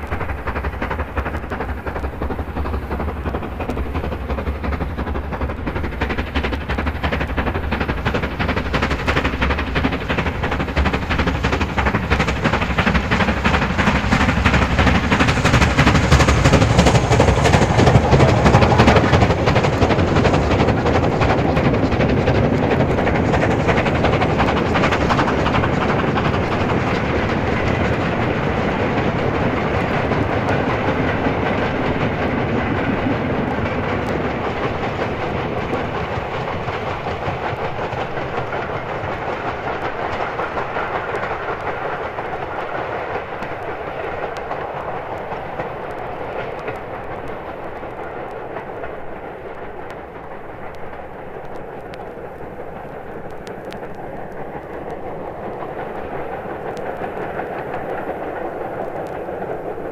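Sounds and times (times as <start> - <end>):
train wheels clattering over rails: 0.0 - 59.9.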